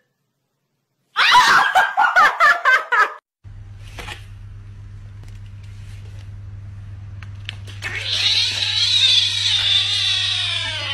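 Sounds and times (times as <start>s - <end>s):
kitten meowing: 7.8s - 10.9s.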